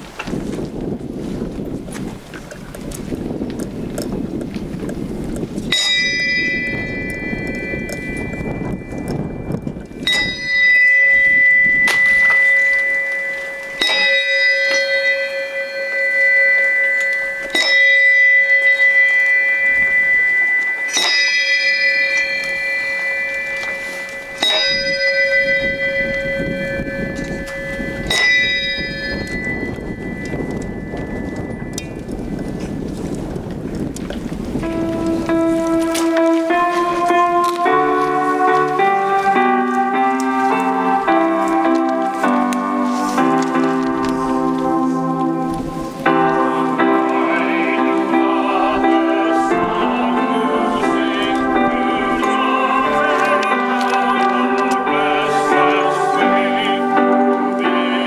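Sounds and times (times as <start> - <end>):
wind rumble on microphone: 0.0 - 15.4, 17.6 - 42.2, 42.8 - 47.2
bell tolling: 5.7 - 32.8, 34.6 - 58.0.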